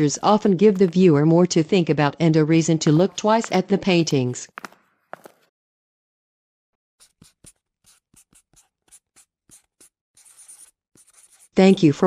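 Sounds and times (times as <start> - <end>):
marker scratching on paper: 2.8 - 4.3, 7.0 - 12.0.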